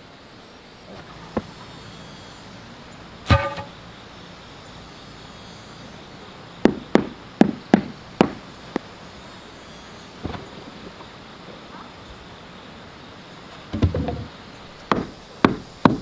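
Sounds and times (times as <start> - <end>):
hollow knock with ringing tone: 3.3 - 3.8.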